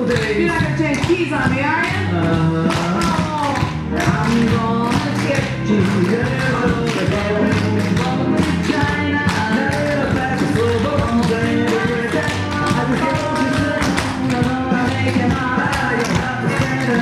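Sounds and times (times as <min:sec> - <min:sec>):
loud instrumental music: 0:00.0 - 0:17.0
tap shoes on wooden floor: 0:00.1 - 0:17.0.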